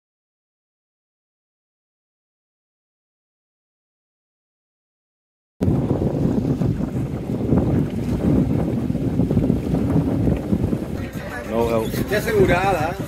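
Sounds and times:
wind buffeting microphone: 5.6 - 13.0.

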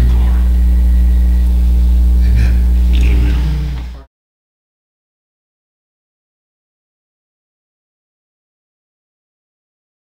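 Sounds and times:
electrical mains hum: 0.0 - 4.1
faint murmurs: 0.0 - 4.1.

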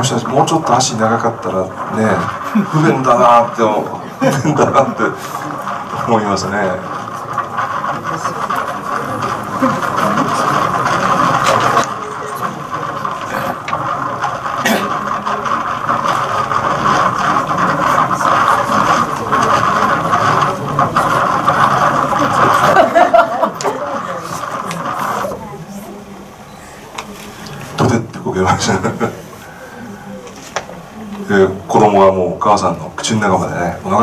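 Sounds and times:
indistinct voices: 0.0 - 34.0
steady background noise: 0.0 - 34.0.

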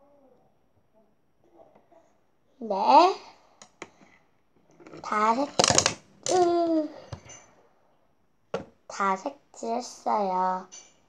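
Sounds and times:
child vocalizing: 6.3 - 7.1.

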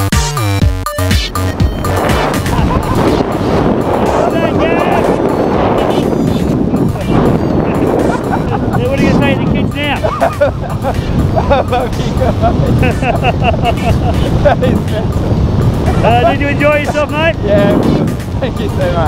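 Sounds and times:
wind rushing over microphone: 1.3 - 19.0
men laughing and whooping: 2.0 - 6.2, 6.8 - 15.2, 15.8 - 17.4.

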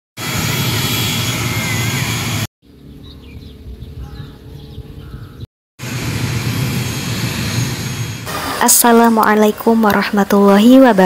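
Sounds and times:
loud rushing noise: 5.8 - 9.1.

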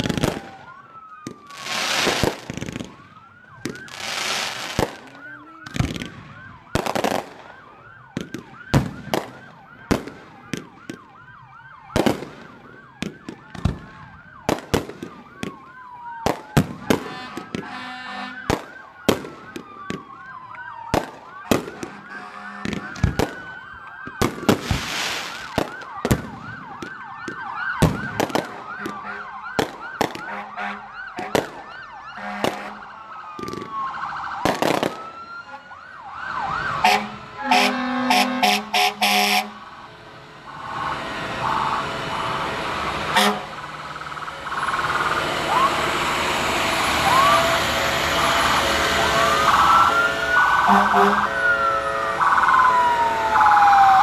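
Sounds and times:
emergency sirens wailing: 0.0 - 54.0
fireworks banging: 1.2 - 3.0, 3.6 - 11.0, 20.9 - 23.5, 24.1 - 30.4, 34.4 - 35.1
rushing noise: 39.6 - 53.9.

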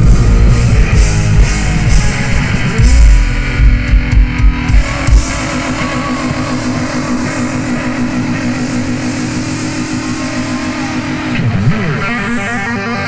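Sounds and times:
rock band drums: 0.0 - 13.0
sustained electric guitar chord: 0.0 - 13.0.

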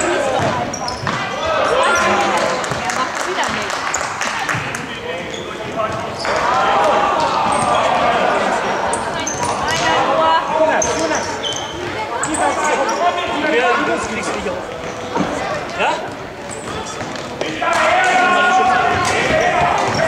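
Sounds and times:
sports shoes squeaking: 0.0 - 6.7, 8.9 - 13.4, 14.0 - 17.5
ball kicked and bouncing: 0.3 - 1.2
children and spectators shouting: 1.3 - 2.6, 6.3 - 9.2, 17.4 - 20.0.

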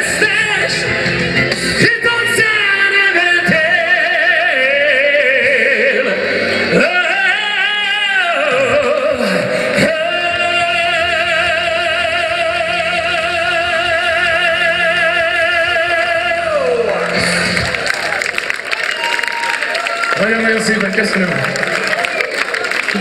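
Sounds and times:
man singing a long high note: 0.0 - 1.1, 1.7 - 17.6
audience applauding and cheering: 16.1 - 23.0.

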